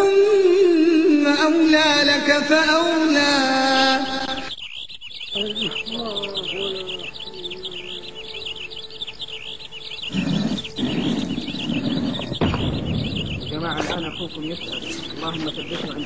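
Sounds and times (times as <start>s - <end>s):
high quick chirps chorus: 2.5s - 16.0s.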